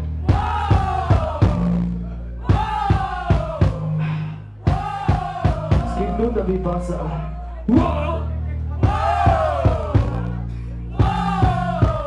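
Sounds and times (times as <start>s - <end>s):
audience singing along: 0.0s - 6.0s, 8.8s - 12.0s
drum hits: 0.2s - 1.8s, 2.4s - 3.9s, 4.6s - 6.3s, 8.8s - 10.3s, 11.0s - 12.0s.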